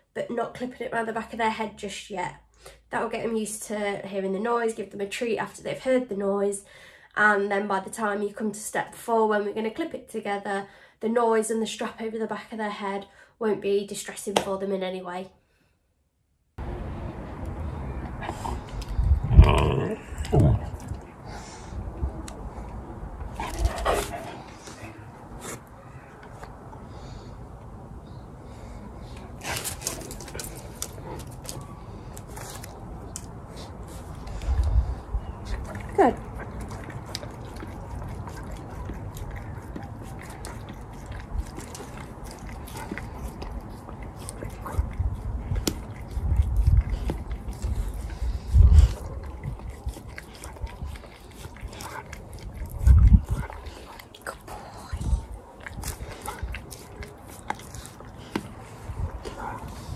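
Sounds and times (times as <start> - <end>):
dog licking and chewing: 22.2 - 26.7, 29.4 - 59.9.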